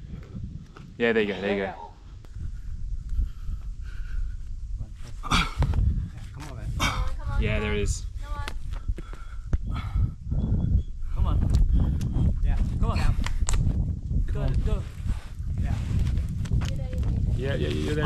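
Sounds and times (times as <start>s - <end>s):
wind rumble on microphone: 0.0s - 18.0s
man panting and grunting: 5.2s - 6.0s, 6.6s - 7.2s.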